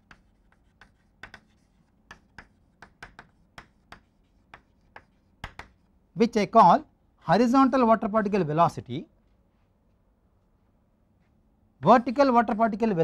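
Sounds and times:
chalk tapping and scratching: 0.0 - 5.9.

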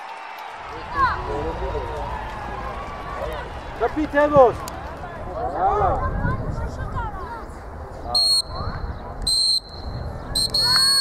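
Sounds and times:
players shouting: 0.0 - 6.0.

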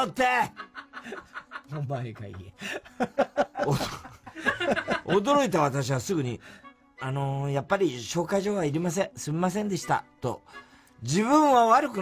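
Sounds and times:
man speaking loudly: 0.0 - 0.5
snickering laughter: 0.5 - 5.2.

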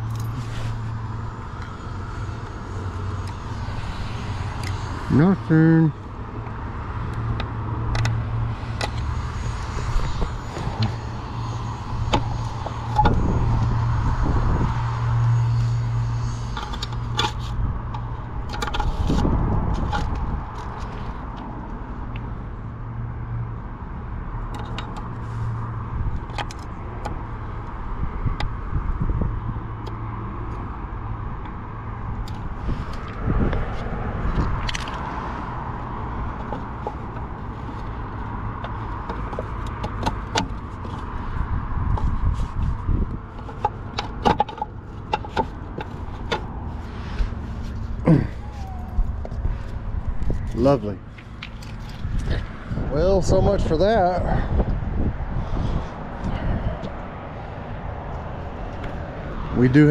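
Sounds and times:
steady low hum: 0.0 - 22.9
metal clicks and scrapes: 7.0 - 21.5, 32.2 - 48.0, 49.2 - 52.6.

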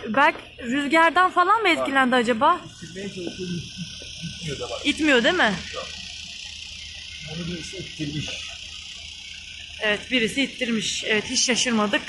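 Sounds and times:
steady high-pitched hiss: 0.6 - 12.0.

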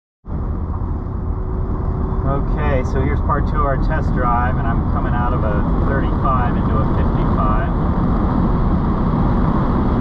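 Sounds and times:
car engine low rumble: 0.2 - 10.0
tyre and road noise: 0.2 - 10.0.

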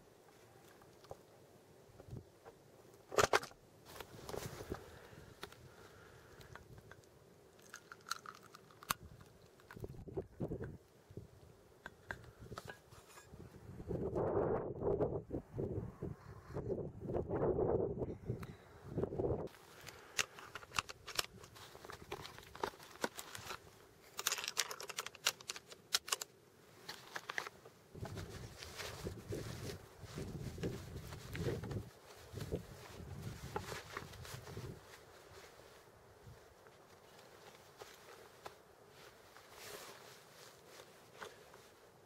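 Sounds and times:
clothing rustling against microphone: 3.8 - 6.2, 19.5 - 25.6, 26.6 - 42.0
small clicks and knocks: 6.4 - 10.8, 19.8 - 27.6.

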